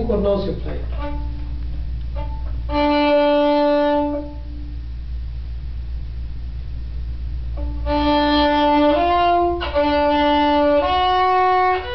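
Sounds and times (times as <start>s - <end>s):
violin long bowed notes: 0.7s - 4.6s, 7.6s - 11.9s.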